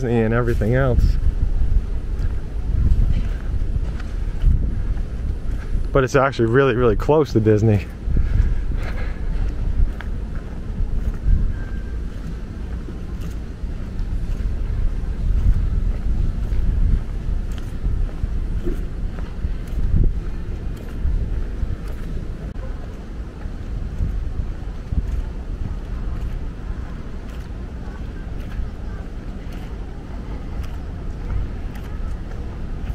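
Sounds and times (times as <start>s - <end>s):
wind noise on microphone: 0.0s - 32.9s.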